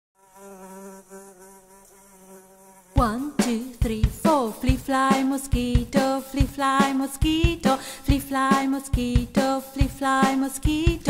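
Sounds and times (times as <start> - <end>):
flying insect buzzing: 0.2 - 7.8
music with heavy drum hits: 3.0 - 10.0.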